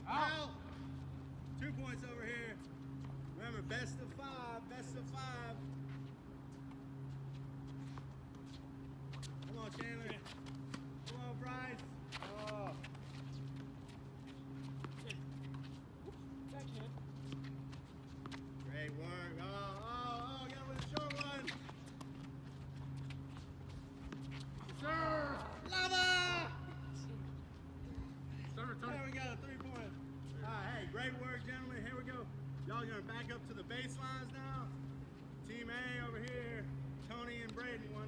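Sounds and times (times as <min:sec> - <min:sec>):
low hum: 0:00.0 - 0:38.0.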